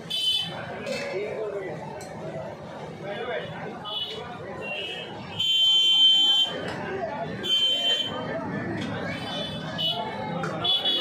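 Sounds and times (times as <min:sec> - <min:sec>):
background talk: 0:00.0 - 0:11.0.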